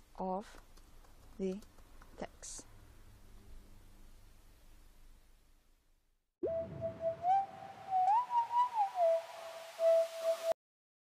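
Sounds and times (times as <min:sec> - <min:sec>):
person whistling a tune: 0:06.5 - 0:10.6.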